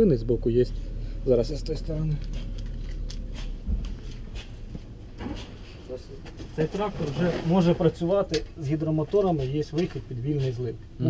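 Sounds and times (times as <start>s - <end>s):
low steady rumble: 0.0s - 11.0s
camera handling scuffs and clicks: 2.2s - 5.6s
footsteps: 2.2s - 8.1s
soft thump: 3.6s - 4.0s.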